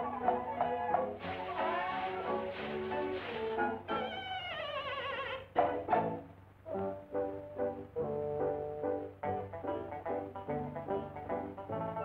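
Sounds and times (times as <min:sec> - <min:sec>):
wavering cry sliding down: 0:03.9 - 0:05.5.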